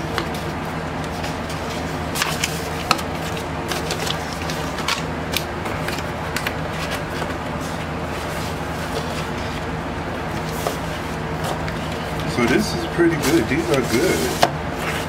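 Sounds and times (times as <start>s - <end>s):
electric fans whooshing: 0.0s - 15.0s
record sleeve rustling: 0.1s - 15.0s.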